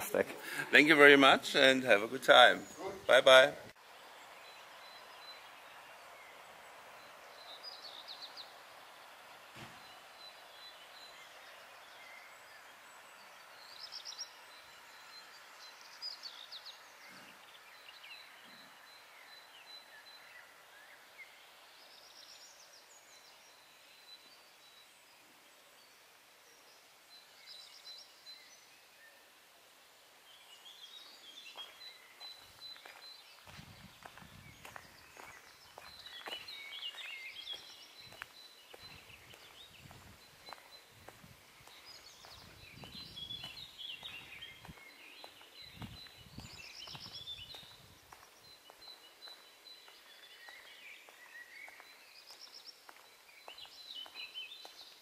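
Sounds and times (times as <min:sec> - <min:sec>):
distant birdsong chirps: 0:00.0 - 0:55.0
soft footsteps: 0:31.5 - 0:54.8.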